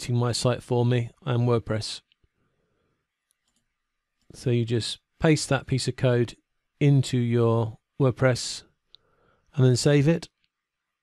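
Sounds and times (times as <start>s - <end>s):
faint clicks: 3.2s - 4.4s.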